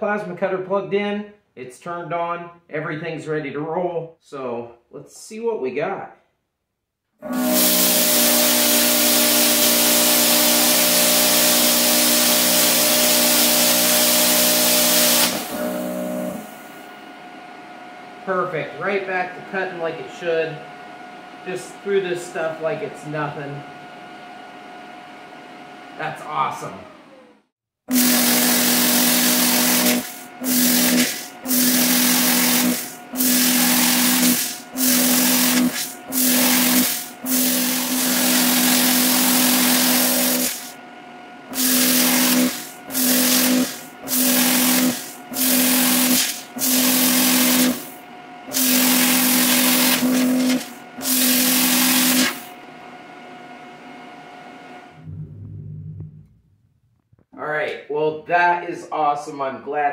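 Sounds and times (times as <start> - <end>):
plasma cutter cutting steel: 7.3 - 16.6, 27.9 - 40.8, 41.5 - 52.5
plasma cutter running quietly: 7.3 - 20.8, 27.9 - 40.8, 41.5 - 52.6.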